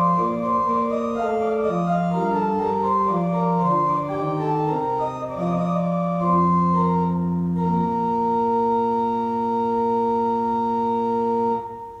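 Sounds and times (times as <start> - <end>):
church organ chord: 0.0 - 12.0.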